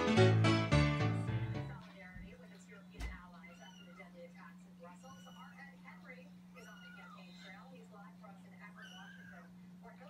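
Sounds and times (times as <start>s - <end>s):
kittens mewing: 4.8s - 5.8s, 6.6s - 7.7s, 8.7s - 9.6s.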